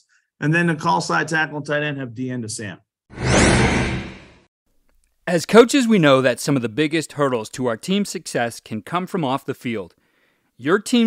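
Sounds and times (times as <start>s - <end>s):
whoosh sound effect: 3.1s - 4.4s.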